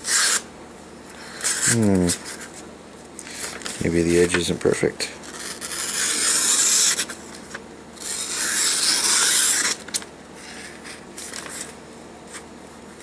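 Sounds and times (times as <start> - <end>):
knife slicing paper: 5.2 - 7.1, 8.0 - 9.8.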